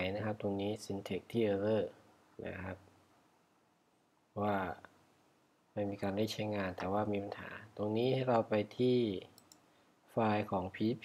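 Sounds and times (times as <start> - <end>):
man speaking: 0.0 - 2.9, 4.4 - 5.0, 5.8 - 9.3, 10.1 - 11.0
computer mouse clicks: 9.3 - 9.7.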